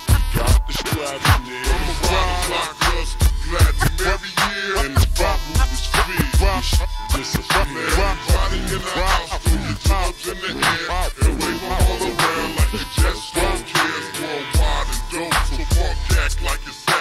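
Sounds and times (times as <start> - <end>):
heavy bass line: 0.0 - 17.0
rapped vocals: 0.0 - 17.0.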